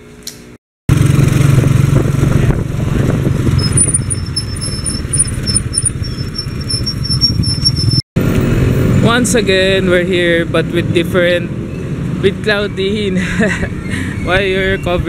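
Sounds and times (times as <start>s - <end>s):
small motorcycle engine running: 0.9s - 8.0s
road and wind noise: 0.9s - 15.0s.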